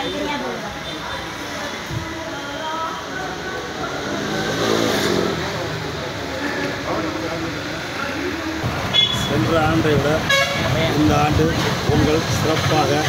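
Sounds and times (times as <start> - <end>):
indistinct voices: 0.0 - 13.0
road traffic passing: 0.0 - 13.0
vehicle engine revving: 3.7 - 9.9.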